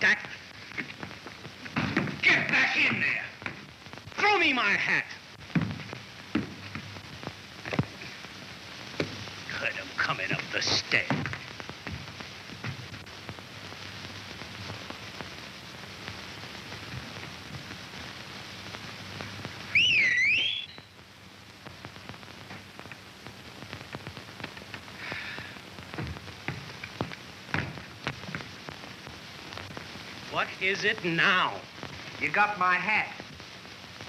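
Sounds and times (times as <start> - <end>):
old film soundtrack hiss and crackle: 0.0 - 34.0
wavering swooping whistle: 19.7 - 20.8.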